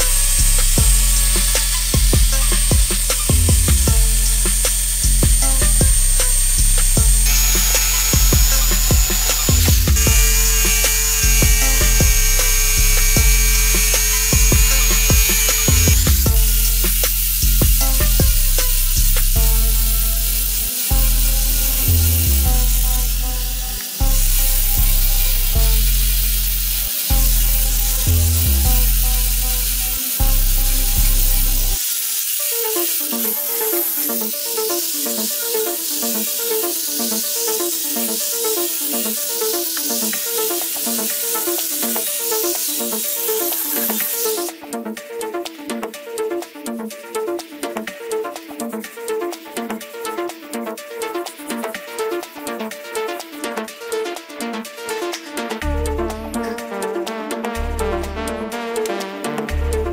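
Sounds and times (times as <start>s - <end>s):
angle grinder sanding wood: 0.0s - 44.6s
jigsaw cutting wood: 0.0s - 44.6s
background music with bass beat: 0.0s - 59.9s.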